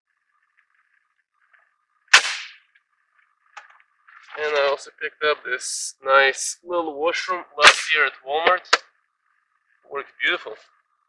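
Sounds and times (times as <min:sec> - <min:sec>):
sharp clack: 0:02.1 - 0:02.7, 0:07.6 - 0:08.9.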